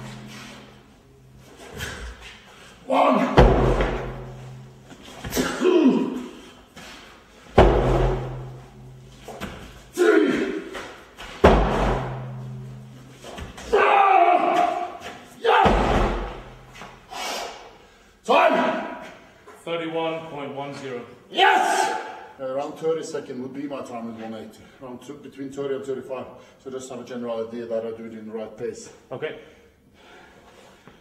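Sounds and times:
tire thudding on concrete: 0:00.0 - 0:02.6, 0:03.2 - 0:13.8, 0:14.4 - 0:17.1
man grunting and shouting: 0:02.8 - 0:03.4, 0:05.3 - 0:06.4, 0:09.9 - 0:10.7, 0:13.7 - 0:16.0.

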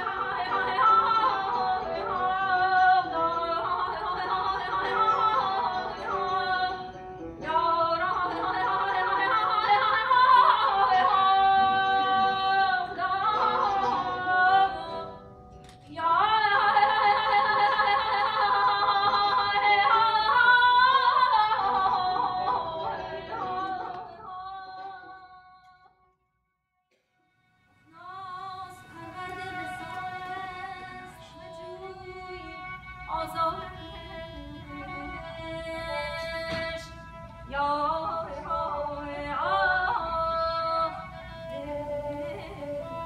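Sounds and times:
woman singing ornamented melody: 0:00.0 - 0:25.8, 0:27.8 - 0:43.0.

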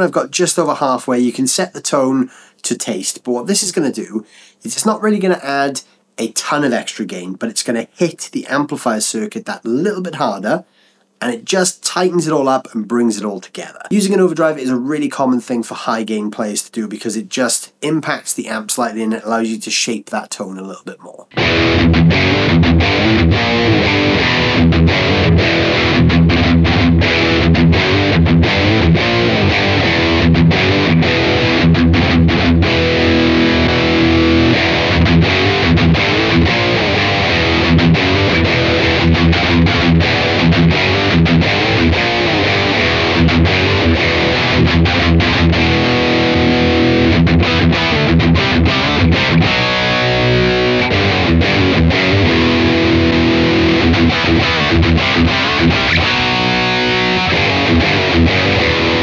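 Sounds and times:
distorted electric guitar metal riff: 0:21.3 - 0:59.0.

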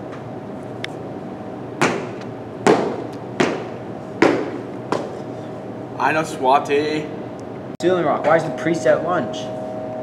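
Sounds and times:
steady room hum: 0:00.0 - 0:10.0.

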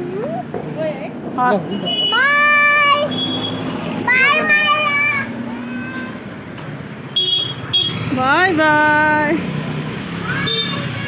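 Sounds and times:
street noise: 0:00.0 - 0:11.0
child shouting: 0:02.1 - 0:03.2, 0:04.0 - 0:06.3, 0:10.2 - 0:11.0.

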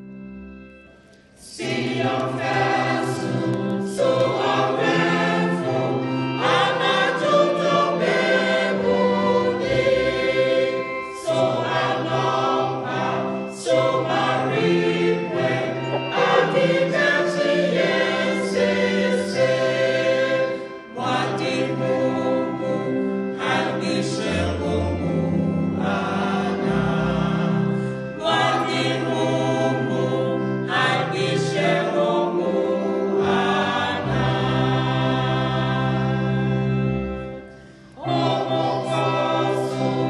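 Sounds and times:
choir singing a hymn: 0:00.0 - 0:40.0.

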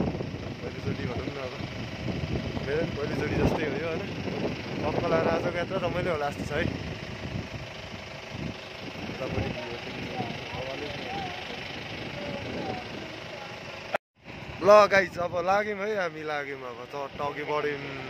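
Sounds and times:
vehicle engine and road noise: 0:00.0 - 0:18.0
people talking: 0:00.6 - 0:01.6, 0:02.6 - 0:04.2, 0:04.8 - 0:06.7, 0:09.0 - 0:13.8, 0:14.6 - 0:18.0.

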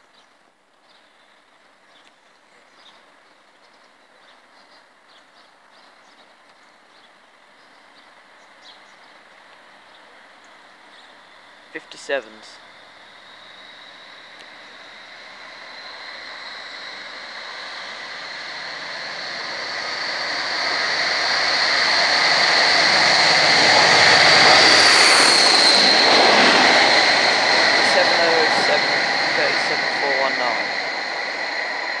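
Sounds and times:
diesel locomotives passing: 0:09.1 - 0:32.0
high engine whine: 0:09.3 - 0:32.0.

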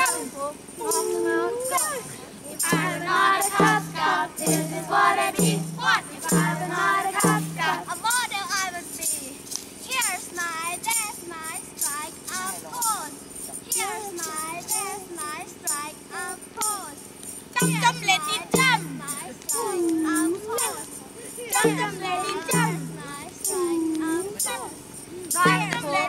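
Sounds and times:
high wavering vocal cries: 0:00.0 - 0:08.1, 0:17.6 - 0:26.0
young voices singing and chanting: 0:00.0 - 0:26.0
percussive beat: 0:02.6 - 0:08.2, 0:17.5 - 0:24.6, 0:25.3 - 0:26.0.

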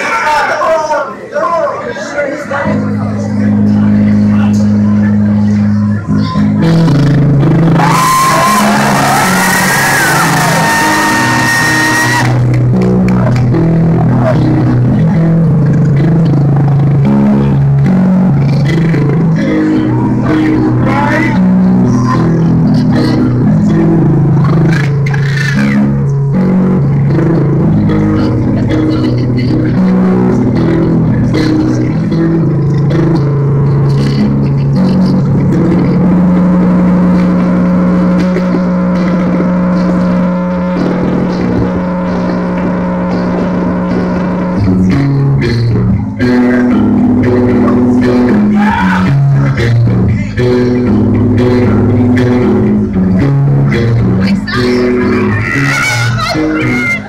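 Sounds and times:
live heavy metal music: 0:02.7 - 0:57.0.

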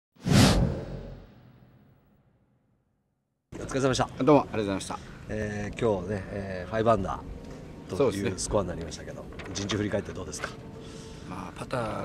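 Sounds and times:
whoosh: 0:00.2 - 0:02.4.

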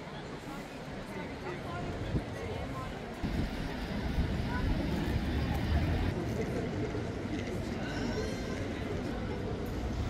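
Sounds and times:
voices of passers-by: 0:00.0 - 0:10.0.

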